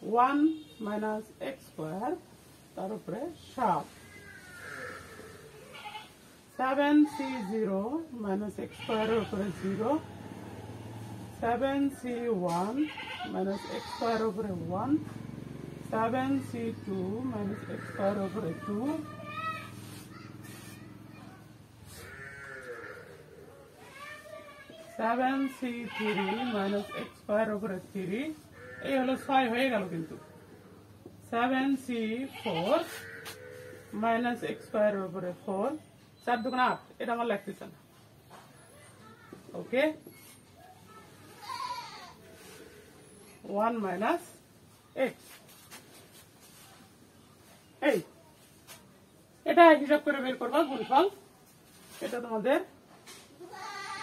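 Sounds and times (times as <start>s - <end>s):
goat bleating: 4.4s - 6.2s, 8.6s - 10.6s, 12.8s - 14.4s, 17.2s - 19.8s, 21.3s - 23.5s, 25.6s - 27.2s, 28.5s - 30.6s, 32.2s - 34.7s, 41.3s - 43.0s, 50.4s - 51.2s, 53.4s - 54.0s.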